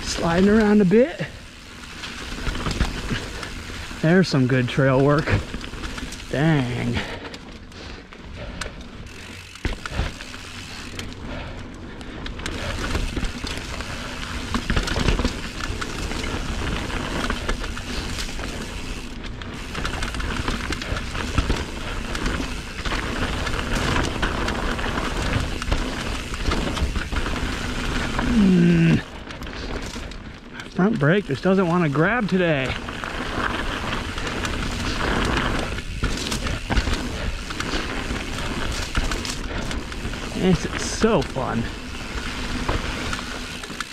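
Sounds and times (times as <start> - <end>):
bike clattering over bumps: 0.0 - 43.9
tyres rolling on dirt: 0.0 - 43.9.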